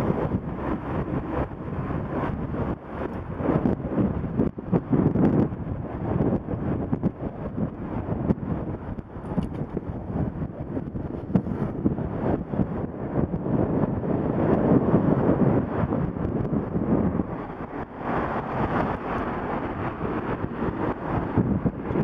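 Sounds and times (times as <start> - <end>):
road traffic: 0.0 - 22.0
wind buffeting microphone: 0.0 - 22.0.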